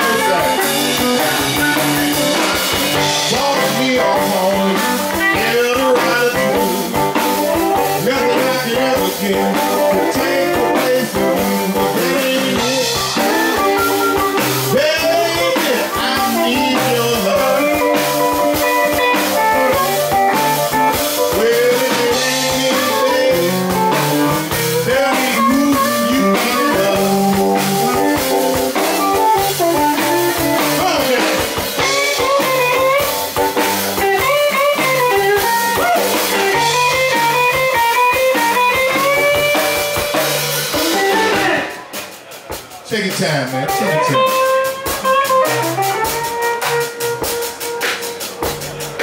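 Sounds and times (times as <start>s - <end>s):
electric guitar lead with bent notes: 0.0s - 42.0s, 43.0s - 49.0s
drum kit: 0.0s - 49.0s.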